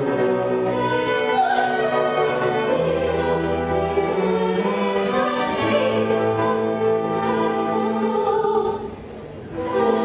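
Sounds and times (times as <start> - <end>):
string orchestra: 0.0 - 10.0.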